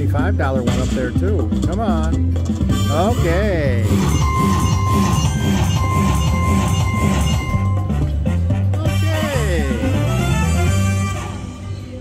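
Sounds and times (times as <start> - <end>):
slot machine win music: 0.6 - 11.8.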